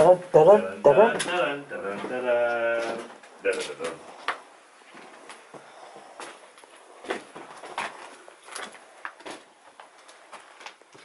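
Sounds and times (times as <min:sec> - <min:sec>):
footsteps on rubble and paper: 0:06.2 - 0:11.0.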